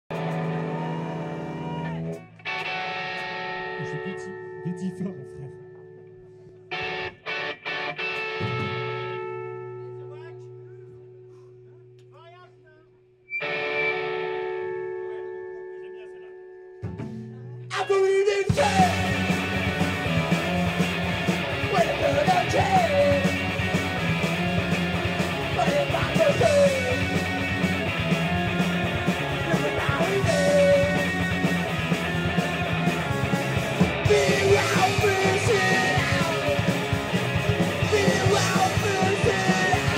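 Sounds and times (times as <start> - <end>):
rock band playing loudly: 0.1 - 5.0, 5.6 - 10.2, 13.3 - 39.9
electric guitar chord ringing: 1.9 - 12.0, 13.3 - 17.0.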